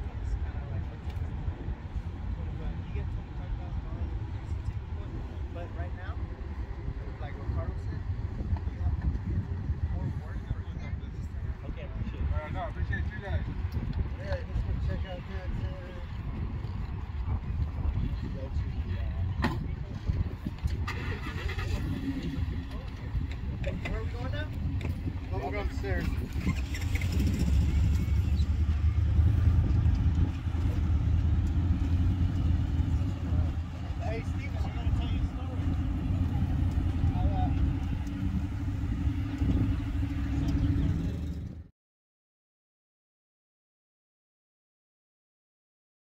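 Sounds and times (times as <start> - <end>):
faint voices: 0.0 - 41.6
pickup truck engine pulling away: 20.7 - 22.8, 25.7 - 41.6.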